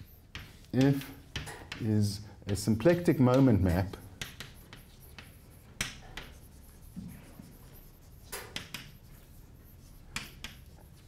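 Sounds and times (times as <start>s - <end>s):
chalk scratching on blackboard: 0.0s - 11.0s
chalk tapping: 0.0s - 11.0s.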